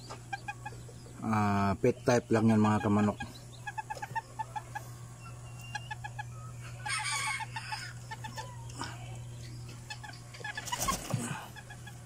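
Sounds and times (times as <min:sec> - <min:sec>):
chicken clucking: 0:00.0 - 0:12.0.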